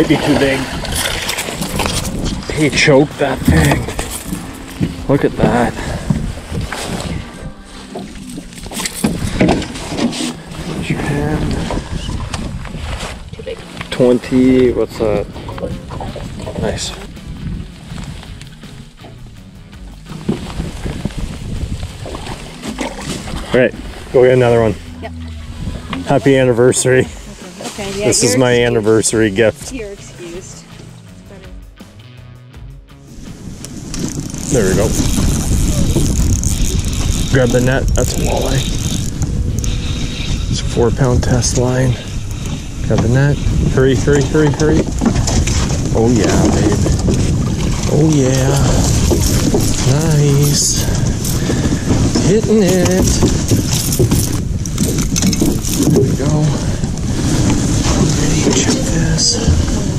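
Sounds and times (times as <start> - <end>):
steady low rumble: 0.0 - 59.9
indistinct voices: 22.6 - 31.8
fishing reel being cranked: 33.9 - 40.7, 47.4 - 51.8, 52.7 - 56.6.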